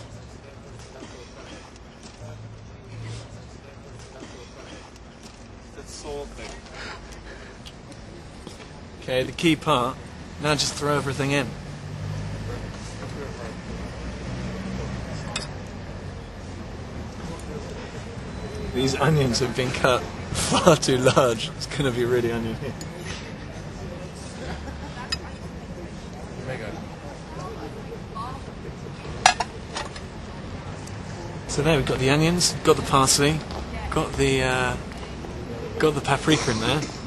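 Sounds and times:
city traffic rumble: 0:00.0 - 0:37.0.

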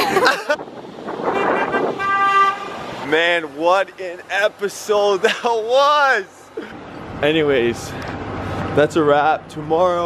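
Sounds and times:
car horn honk: 0:01.2 - 0:03.0.

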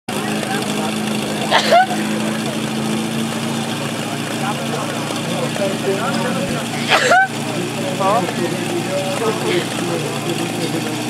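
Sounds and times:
small pump engine idling: 0:00.1 - 0:11.0
voice calling out: 0:08.7 - 0:10.8.

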